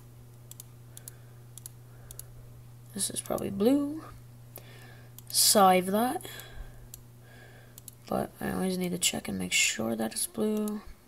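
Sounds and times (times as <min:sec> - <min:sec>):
computer mouse clicking: 0:00.4 - 0:02.3, 0:07.8 - 0:08.0.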